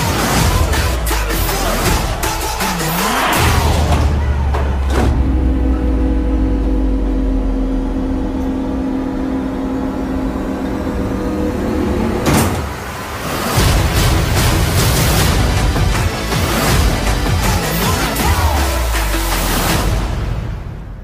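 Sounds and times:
deep sustained drone: 0.9 - 16.1.

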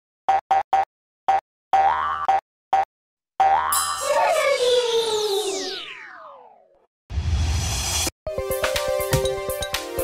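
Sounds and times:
bouncy pitched boings: 1.8 - 4.0
upward sliding notes: 4.0 - 6.7.

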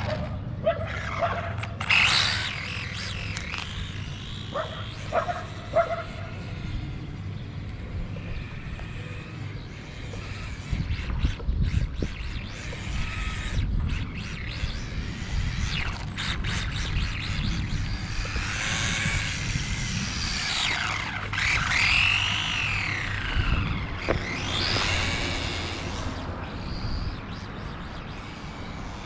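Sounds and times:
toy car electric motor whining: 0.0 - 29.0.

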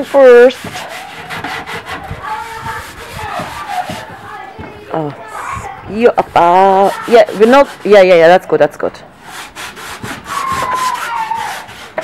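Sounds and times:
sandpaper rasping on wood: 0.0 - 4.4, 6.0 - 8.4, 9.2 - 12.0.

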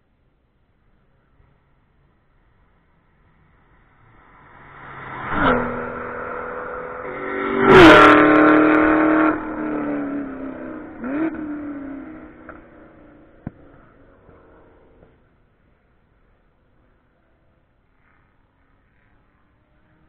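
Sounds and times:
racing cars passing by: 2.6 - 15.3.

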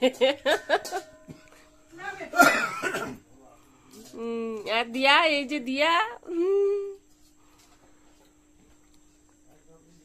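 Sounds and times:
person coughing: 2.3 - 3.2.

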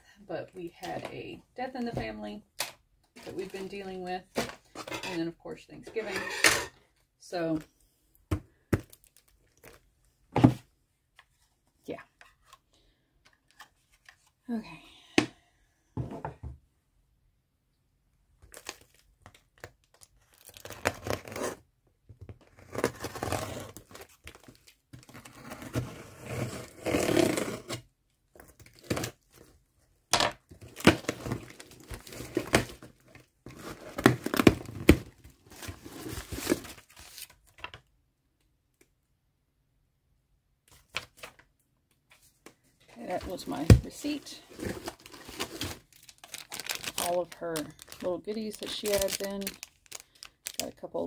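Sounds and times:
packing crinkling: 18.4 - 21.5, 43.0 - 51.0
packing tape ripping: 20.2 - 21.6, 44.6 - 48.1, 48.7 - 50.7.

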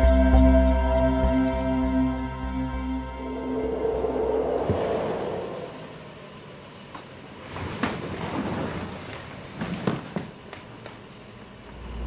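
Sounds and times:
quiet hum: 0.0 - 12.0
rushing background noise: 0.6 - 7.8.

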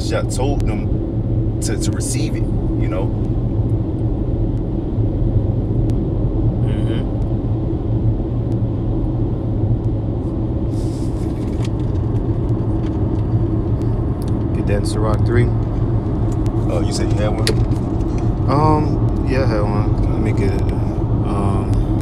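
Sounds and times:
road and engine rumble: 0.0 - 22.0.

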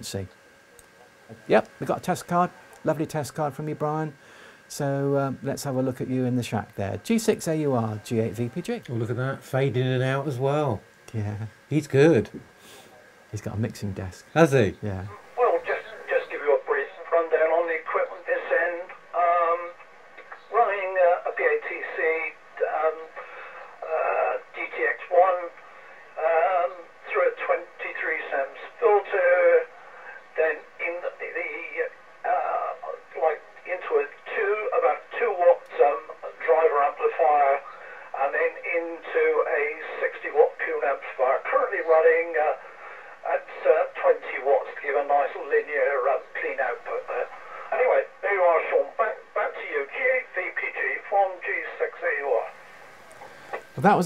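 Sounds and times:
man talking over radio: 1.5 - 12.4, 13.3 - 25.6, 26.2 - 29.6, 30.4 - 52.5.

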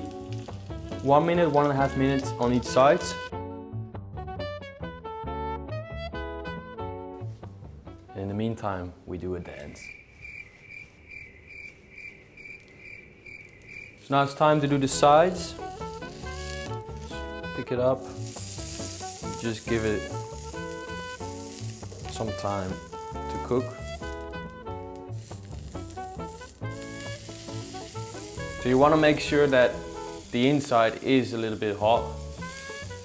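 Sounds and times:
fish searing in frying pan: 0.0 - 3.3, 13.5 - 33.0
faint cricket chirping: 9.7 - 14.7.

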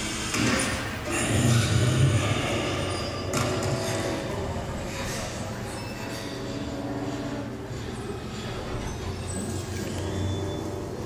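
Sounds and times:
horror film soundtrack over speakers: 0.0 - 11.0.

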